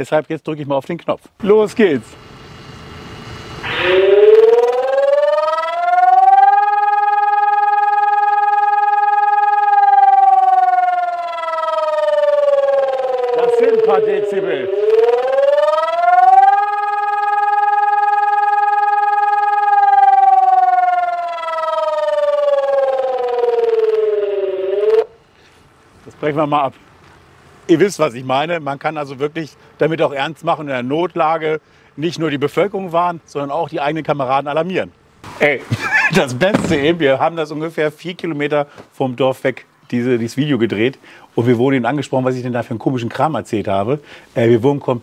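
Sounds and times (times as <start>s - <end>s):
electronic siren alarm: 2.7s - 25.2s.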